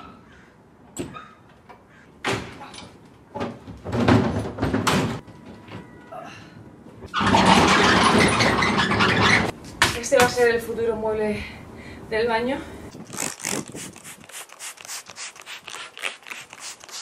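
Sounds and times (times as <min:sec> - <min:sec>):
wooden cabinet knocking and bumping: 0:03.4 - 0:05.2.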